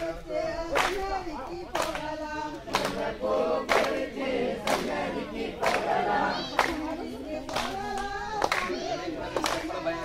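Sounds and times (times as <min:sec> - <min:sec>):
group singing folk song: 0:00.0 - 0:10.0
hands clapping: 0:00.7 - 0:04.0, 0:04.6 - 0:05.0, 0:05.6 - 0:09.8.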